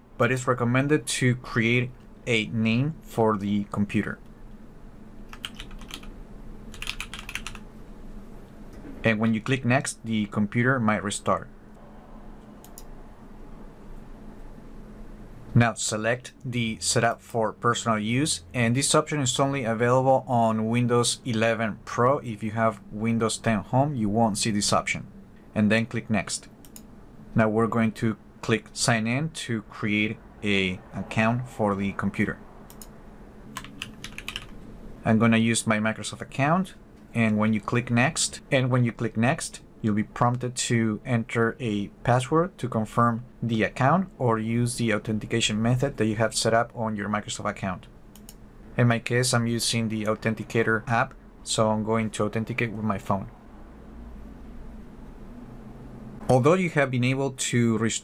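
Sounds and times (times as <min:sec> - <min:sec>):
typing on computer keyboard: 0:05.3 - 0:06.1, 0:06.7 - 0:07.6, 0:33.5 - 0:34.6.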